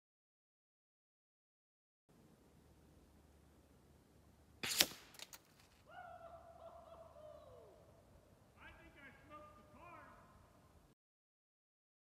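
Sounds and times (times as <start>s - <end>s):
air rifle shot: 4.6s - 5.3s
distant calls: 5.8s - 10.8s.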